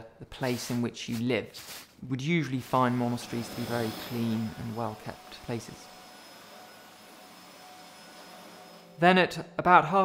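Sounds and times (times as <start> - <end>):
vacuum cleaner running: 2.6 - 9.0.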